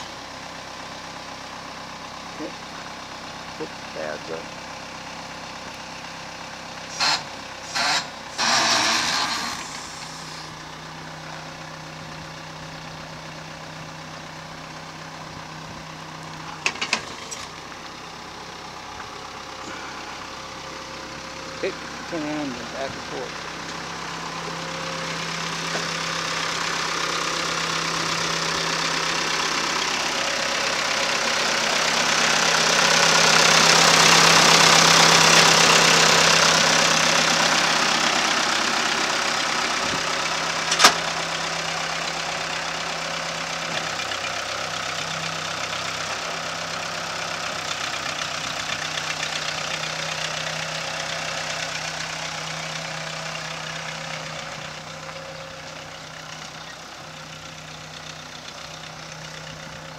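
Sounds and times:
backhoe engine running: 0.0 - 59.9.

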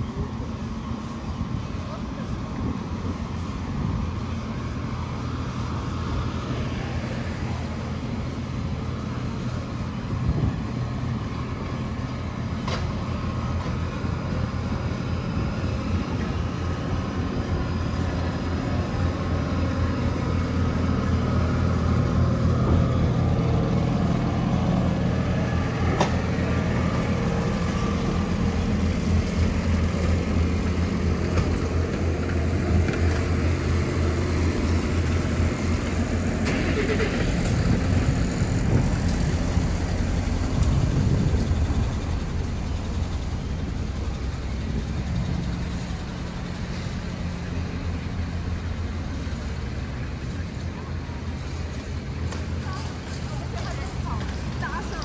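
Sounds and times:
city street noise: 0.0 - 55.0
engine running with low hum: 0.0 - 55.0.

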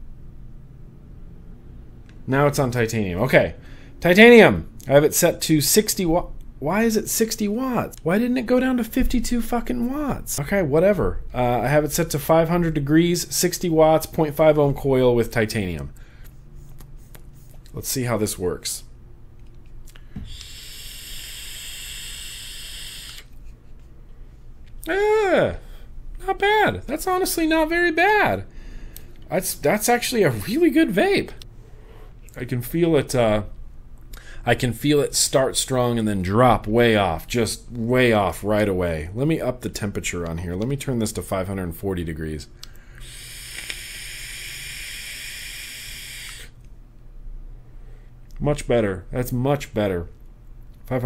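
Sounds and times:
e-cigarette hissing draw: 20.2 - 23.4, 43.0 - 46.6.

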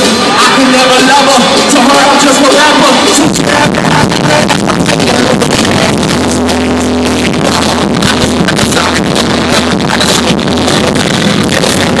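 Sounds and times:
hip-hop beat over sound system: 0.0 - 12.0.

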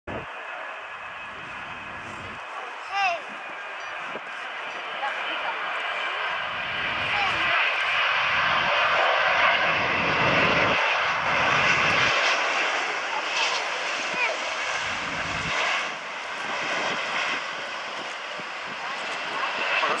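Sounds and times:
jet engine whine and rush: 0.1 - 20.0.

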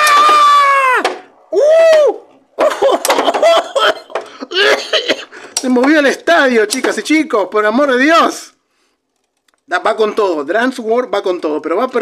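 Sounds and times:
man crying out: 3.7 - 5.2.

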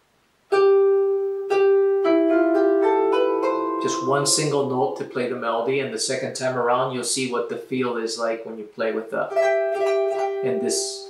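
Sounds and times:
harp notes plucked: 0.5 - 5.8, 9.3 - 11.0.

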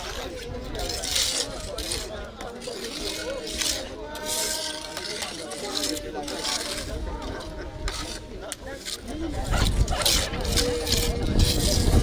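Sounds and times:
people talking: 0.0 - 12.0
trowel scraping wet cement: 0.0 - 12.0.

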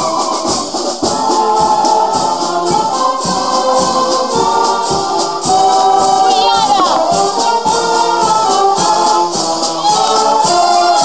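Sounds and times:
wind band playing: 0.0 - 11.0.

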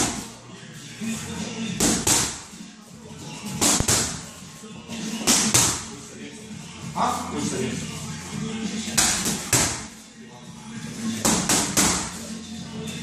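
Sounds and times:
gloved punches smacking mitts: 1.8 - 2.5, 3.6 - 4.2, 5.2 - 5.9, 9.0 - 9.9, 11.2 - 12.2.

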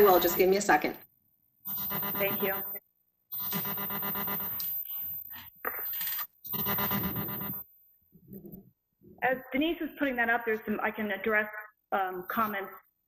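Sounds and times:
buzzy glitching conference audio: 0.0 - 1.0, 1.7 - 12.8.

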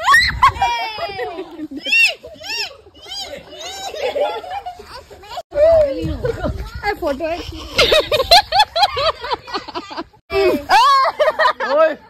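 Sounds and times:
excited voices calling out: 0.0 - 6.3.

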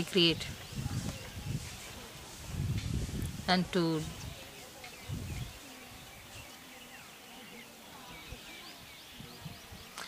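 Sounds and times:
faint outdoor ambience: 0.0 - 10.0.

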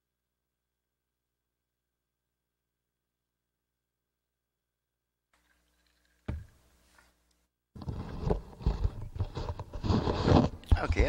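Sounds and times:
rustling and knocking handling noise: 6.0 - 7.2, 7.8 - 11.0.

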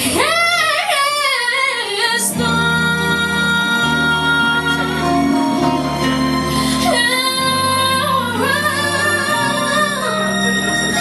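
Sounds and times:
woman singing: 0.0 - 6.0, 6.7 - 11.0
backing music: 2.0 - 11.0.

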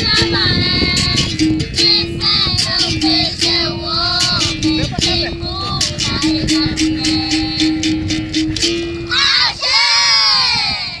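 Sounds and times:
children shouting: 9.1 - 11.0.

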